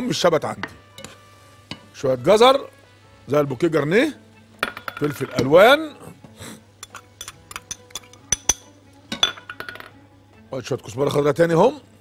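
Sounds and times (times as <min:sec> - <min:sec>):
soft background music: 0:00.0 - 0:12.0
kitchenware clinking: 0:04.6 - 0:05.7, 0:06.8 - 0:10.0.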